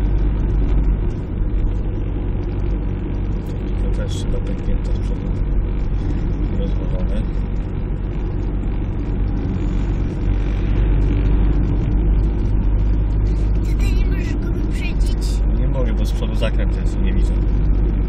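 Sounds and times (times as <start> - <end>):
car engine and road drone: 0.0 - 18.0.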